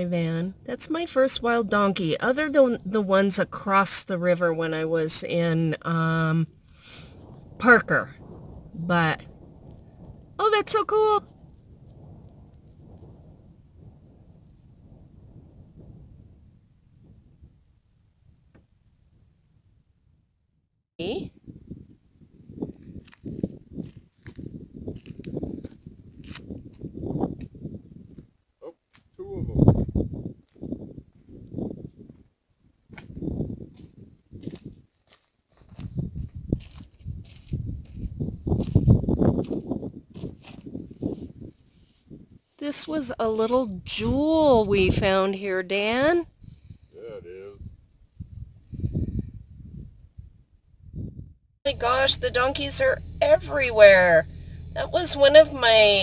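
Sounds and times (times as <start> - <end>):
low rumble on microphone: 5.5 - 28.3, 29.2 - 34.8, 35.6 - 42.5, 43.2 - 56.0.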